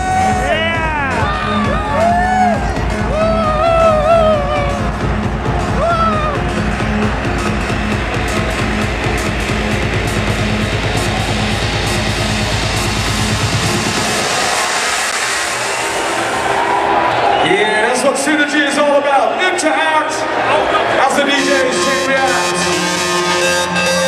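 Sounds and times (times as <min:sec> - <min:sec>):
electronic dance music: 0:00.0 - 0:24.0.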